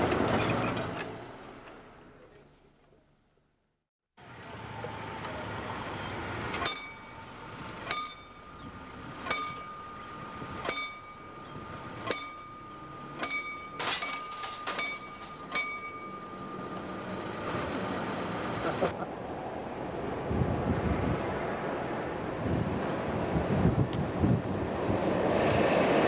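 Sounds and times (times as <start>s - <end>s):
level crossing warning bell: 6.6s - 17.5s.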